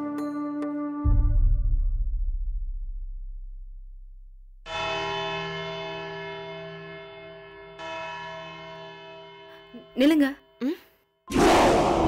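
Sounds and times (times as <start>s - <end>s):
church bell ringing: 4.7s - 10.0s.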